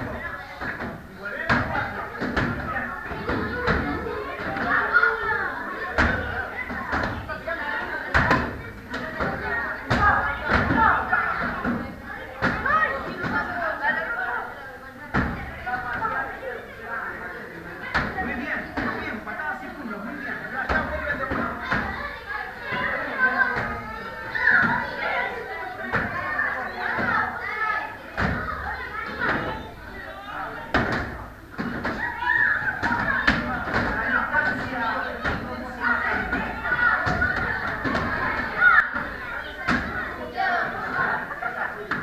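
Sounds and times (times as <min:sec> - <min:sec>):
children chattering and calling out: 0:00.0 - 0:42.0.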